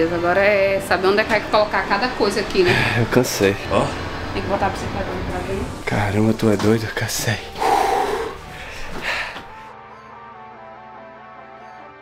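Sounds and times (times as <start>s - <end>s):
man exhaling breathily: 7.6s - 9.7s
music with held notes: 8.5s - 12.0s.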